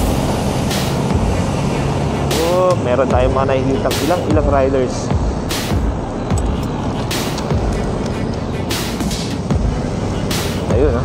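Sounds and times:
scooter engine hum: 0.0s - 11.0s
wind and road rush: 0.0s - 11.0s.

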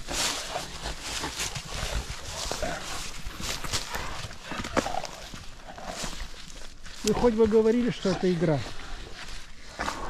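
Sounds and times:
scuffling in dry leaves: 0.0s - 10.0s.

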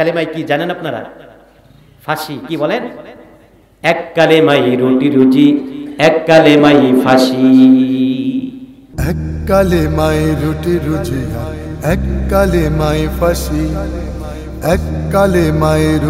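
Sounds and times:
man chanting long notes: 6.5s - 16.0s
man singing slow melody: 7.5s - 16.0s
deep steady drone: 9.0s - 16.0s.

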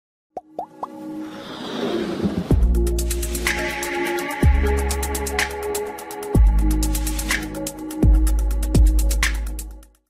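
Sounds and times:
synthesized music: 0.4s - 9.8s.

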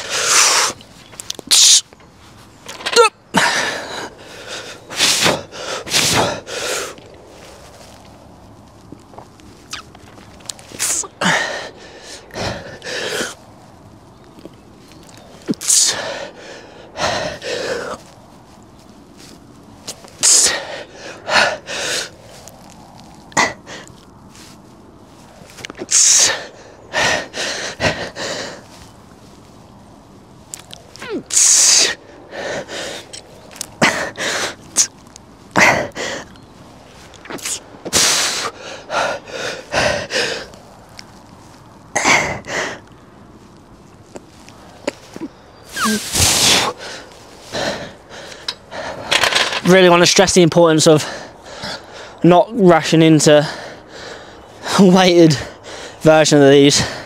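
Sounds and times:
man breathing hard: 3.3s - 8.0s, 10.6s - 13.4s, 15.6s - 18.2s, 20.2s - 22.4s, 23.1s - 24.6s, 25.3s - 28.9s, 31.0s - 34.9s, 35.6s - 43.0s, 44.5s - 49.6s, 50.9s - 52.2s, 53.3s - 57.0s.

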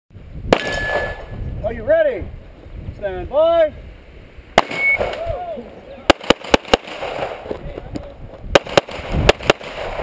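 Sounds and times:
sharp metallic clang ringing: 0.6s - 1.4s.

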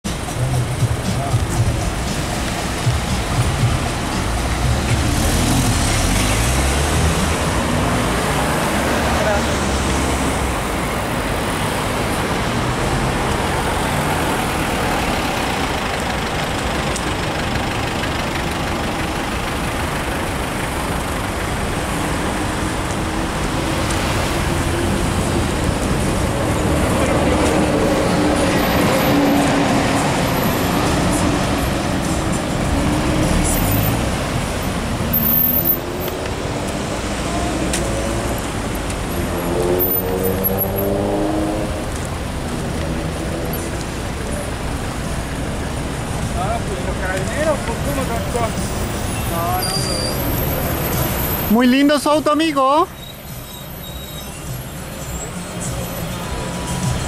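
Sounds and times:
car engines idling in traffic: 0.1s - 39.2s, 41.5s - 57.0s.

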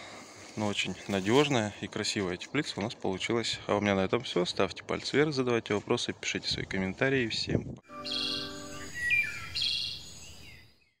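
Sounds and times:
birds chirping: 7.9s - 11.0s.

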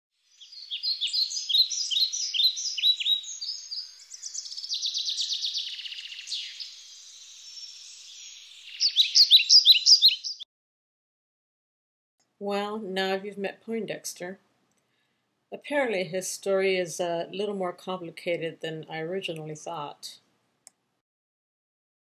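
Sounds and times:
birds chirping: 0.2s - 10.4s
buzzy bird trill: 0.2s - 10.4s.

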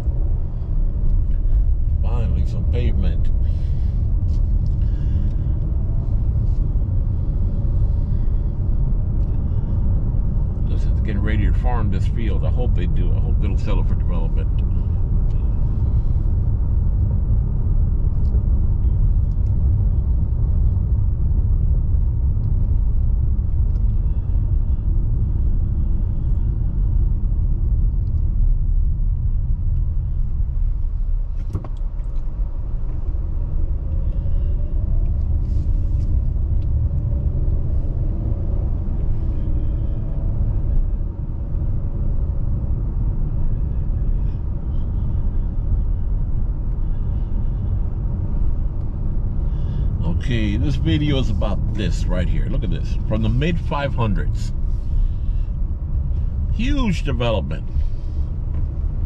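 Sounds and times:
car driving on paved road: 0.0s - 59.0s.

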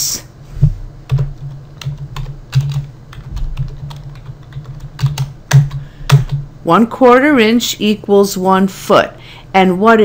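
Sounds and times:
computer keyboard typing: 1.1s - 6.5s.

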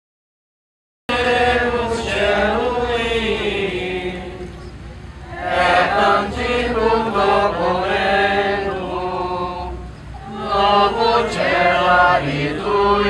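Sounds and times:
congregation singing a chant: 1.1s - 13.0s.

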